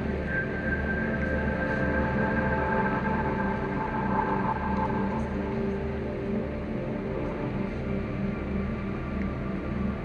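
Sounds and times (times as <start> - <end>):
low drone: 0.0 - 7.6.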